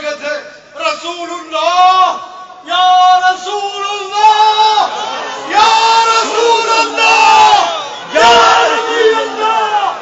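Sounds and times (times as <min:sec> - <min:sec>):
man shouting: 0:01.6 - 0:10.0
crowd voices: 0:04.8 - 0:10.0.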